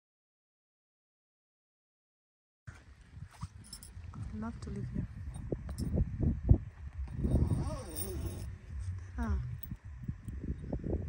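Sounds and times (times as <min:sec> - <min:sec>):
low uneven rumble: 0:02.7 - 0:11.0.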